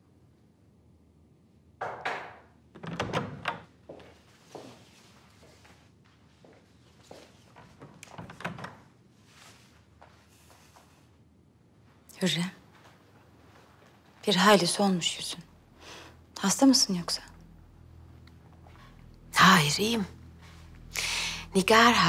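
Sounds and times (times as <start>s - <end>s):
knocks and thuds in a room: 1.8s - 3.7s.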